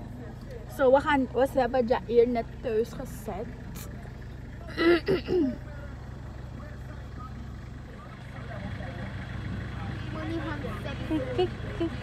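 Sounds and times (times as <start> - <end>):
people talking: 0.0 - 4.0, 6.6 - 12.0
vehicle engine humming: 0.0 - 12.0.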